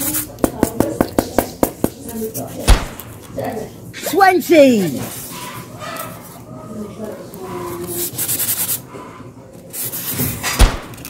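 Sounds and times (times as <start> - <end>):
toy blocks rubbing on styrofoam: 0.0 - 0.4, 7.4 - 8.9, 9.7 - 10.4
sharp knock: 2.7 - 3.1.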